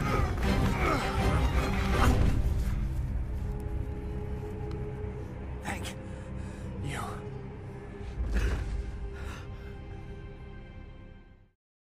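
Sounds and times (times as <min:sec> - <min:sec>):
soft background music: 0:00.0 - 0:11.6.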